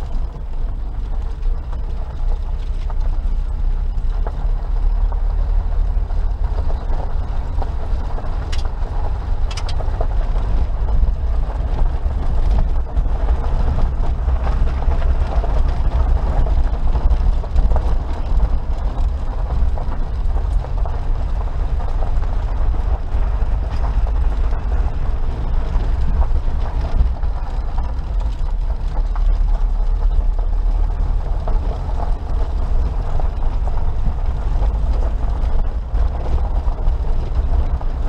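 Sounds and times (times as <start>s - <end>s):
car engine rumble: 0.0s - 38.0s
tyres on loose gravel: 0.0s - 38.0s.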